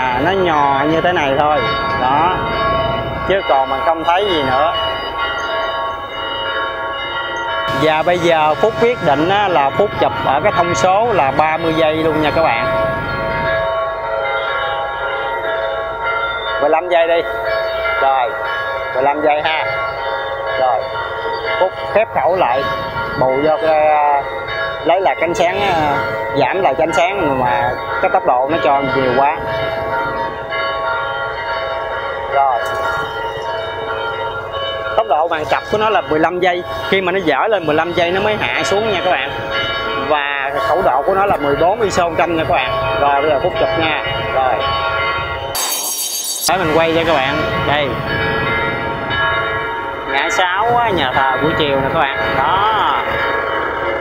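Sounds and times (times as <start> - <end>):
church bells ringing: 0.0 - 54.0.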